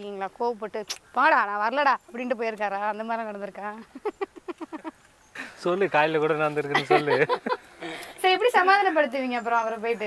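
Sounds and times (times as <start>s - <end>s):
person laughing: 3.9s - 4.9s, 6.7s - 8.0s.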